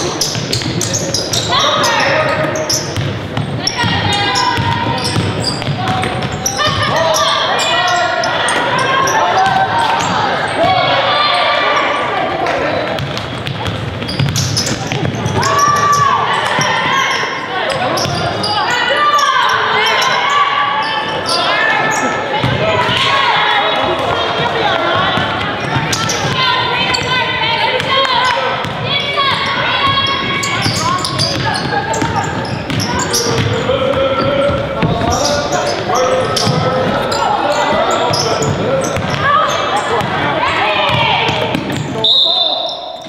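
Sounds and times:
people calling out: 3.6 - 12.8, 14.6 - 43.0.

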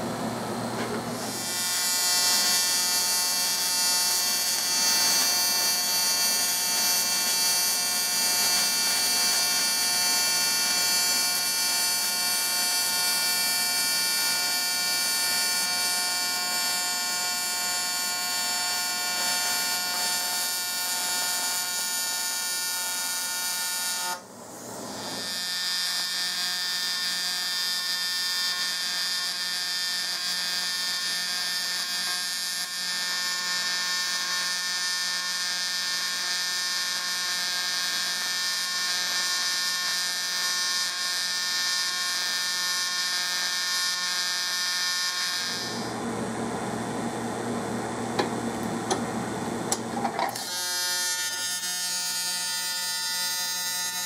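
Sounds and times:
welding arc buzzing: 0.0 - 46.1, 46.7 - 54.0.

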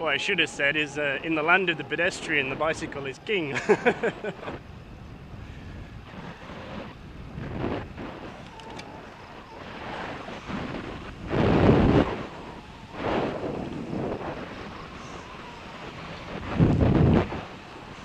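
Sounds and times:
wind gusts on microphone: 0.0 - 18.0.

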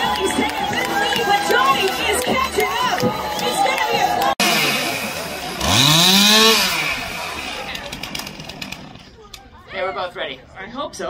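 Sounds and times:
chainsaw engine revving: 4.4 - 9.1.

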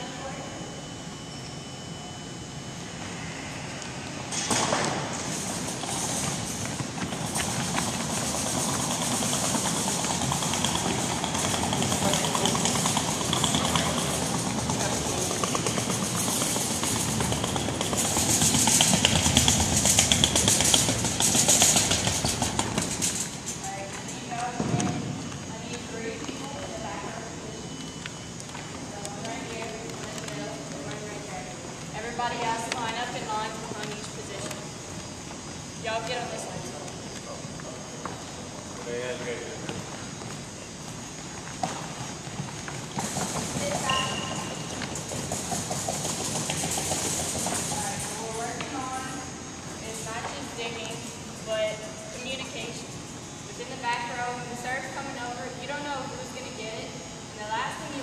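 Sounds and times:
ball cart rattling on wooden floor: 4.5 - 23.6, 41.6 - 49.2.

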